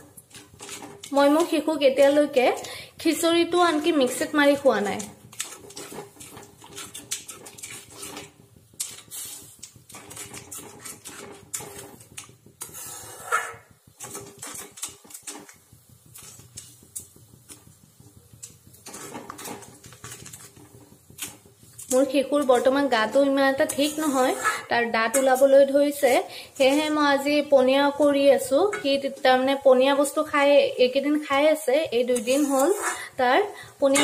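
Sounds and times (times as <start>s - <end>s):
ladle scraping metal pot: 0.0s - 2.4s, 3.6s - 16.6s, 18.7s - 27.3s, 32.0s - 34.0s.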